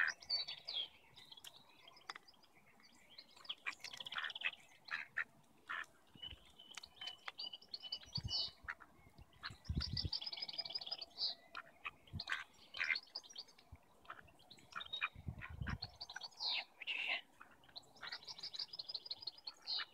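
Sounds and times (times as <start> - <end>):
small birds chirping: 0.0 - 19.9.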